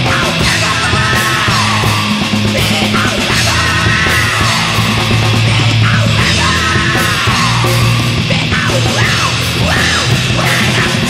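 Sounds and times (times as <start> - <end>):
distorted electric guitar: 0.0 - 11.0
drums played hard: 0.0 - 11.0
hardcore punk music: 0.0 - 11.0
shouted vocals: 0.0 - 11.0.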